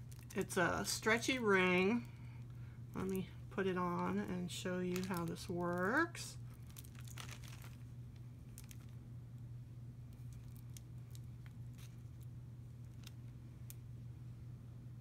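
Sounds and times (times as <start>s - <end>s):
bracelet handling crinkles and clicks: 0.0s - 0.5s, 4.9s - 9.0s, 10.1s - 13.8s
steady low hum: 0.0s - 15.0s.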